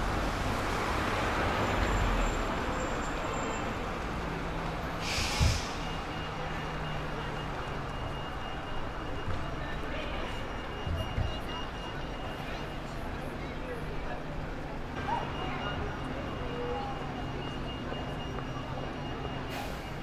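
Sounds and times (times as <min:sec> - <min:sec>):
air brakes hissing: 0:05.0 - 0:06.0, 0:19.5 - 0:20.0.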